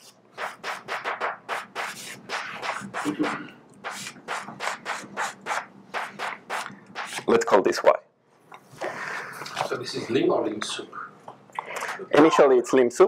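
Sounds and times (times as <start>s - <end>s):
chalk scratching on blackboard: 0.0s - 7.3s.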